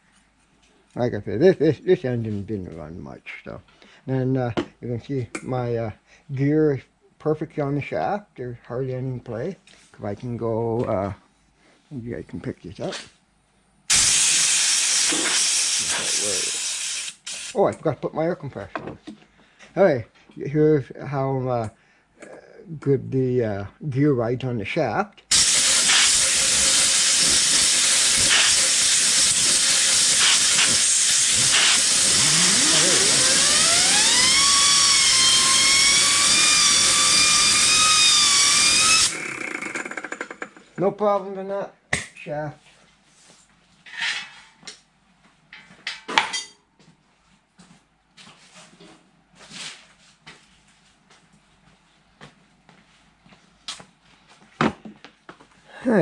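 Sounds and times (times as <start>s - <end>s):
compressed air blow gun hissing: 13.9s - 17.6s, 25.3s - 39.2s
spinning gear whine: 25.3s - 40.6s.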